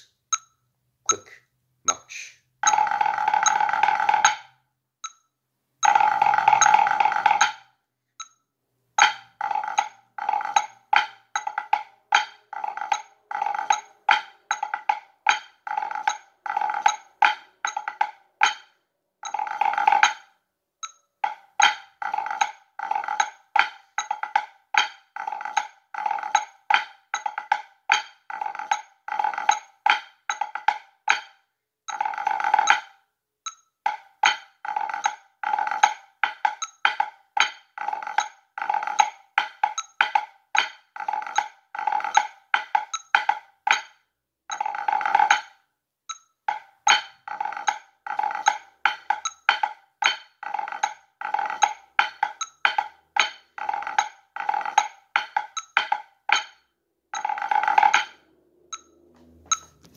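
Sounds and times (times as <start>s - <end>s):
drumsticks on practice pad: 0.0s - 8.4s, 9.0s - 59.9s
drum rolls on practice pad: 2.6s - 4.6s, 5.8s - 7.8s, 9.0s - 20.4s, 21.2s - 33.0s, 33.9s - 45.6s, 46.5s - 59.9s.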